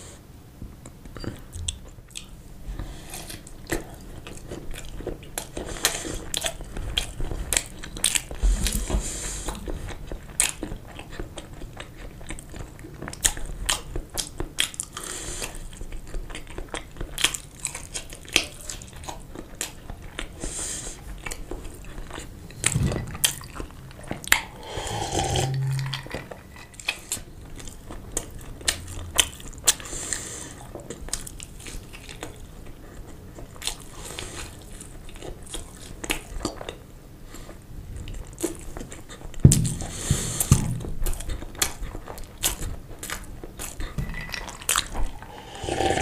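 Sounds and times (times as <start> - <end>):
chewing and biting sausage: 1.5 - 24.8, 25.5 - 46.0
low hum: 24.5 - 26.7.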